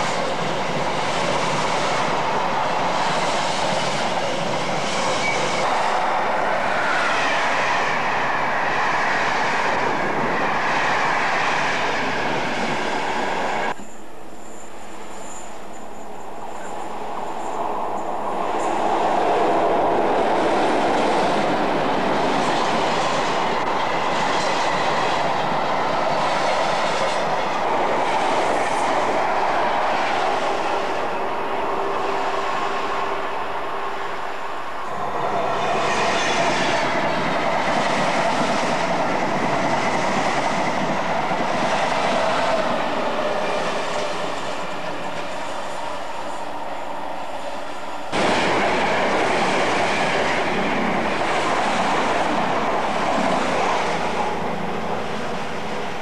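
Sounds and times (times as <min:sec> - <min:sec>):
trains passing on rails: 0:00.0 - 0:56.0.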